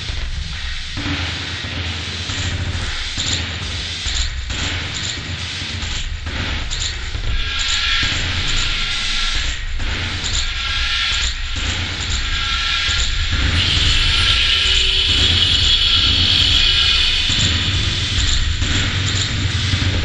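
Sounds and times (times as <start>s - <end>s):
loud rumbling drone: 0.0s - 4.5s, 6.6s - 20.0s
hiss: 0.0s - 20.0s.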